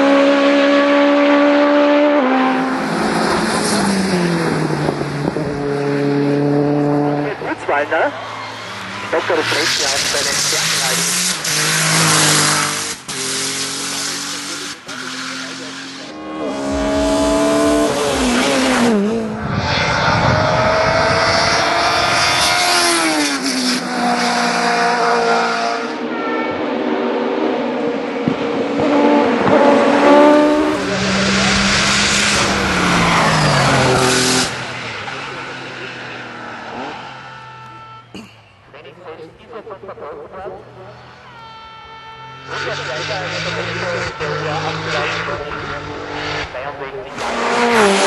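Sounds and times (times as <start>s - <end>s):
race car engines at full throttle: 0.0s - 48.0s.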